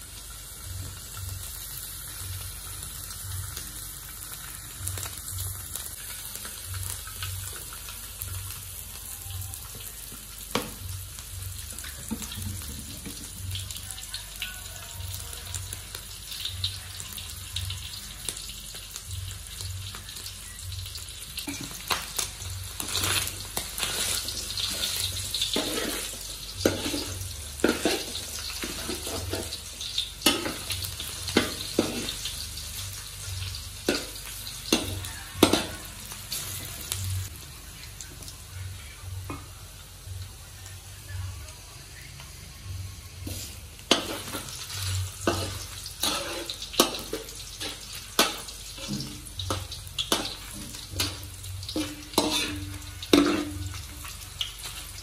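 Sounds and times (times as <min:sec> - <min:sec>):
meat sizzling in oil: 0:00.0 - 0:40.8, 0:41.9 - 0:55.0
metal ladle scraping a wok: 0:22.8 - 0:29.6, 0:43.2 - 0:54.0.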